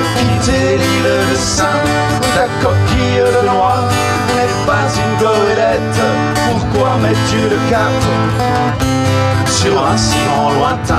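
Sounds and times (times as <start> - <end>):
acoustic guitars playing: 0.0 - 10.9.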